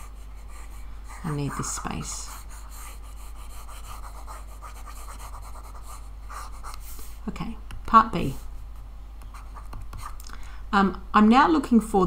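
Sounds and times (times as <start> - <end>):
stylus scrubbing on drawing tablet: 0.0 - 7.2
low electrical hum: 0.0 - 12.0.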